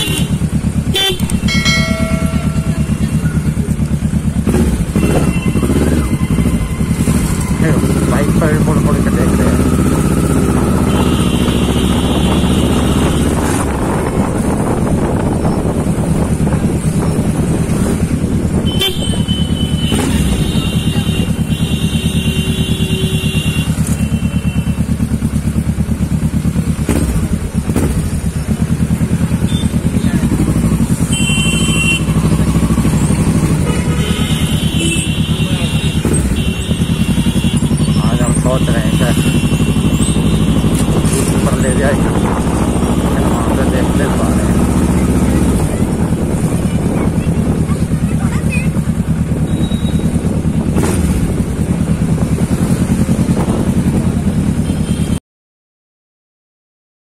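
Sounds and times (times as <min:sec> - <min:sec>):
vehicle horns honking: 0:00.0 - 0:03.6, 0:04.4 - 0:13.7, 0:18.6 - 0:25.1, 0:29.4 - 0:45.7, 0:54.5 - 0:55.2
motorcycle engine running: 0:00.0 - 0:55.2.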